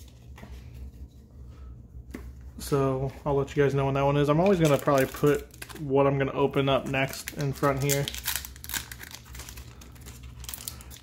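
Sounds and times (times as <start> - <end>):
foil wrapper crinkling: 4.3 - 6.0, 6.6 - 11.0.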